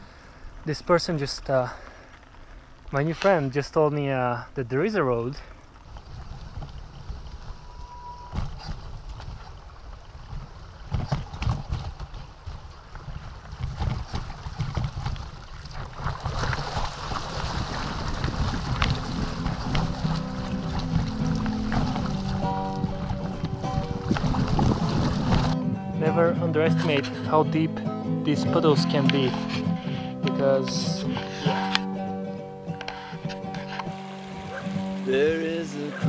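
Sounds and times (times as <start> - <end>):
bicycle rattling on rough track: 0.0 - 25.6
wind rumble on microphone: 5.8 - 25.6
music with steady notes: 19.4 - 36.0.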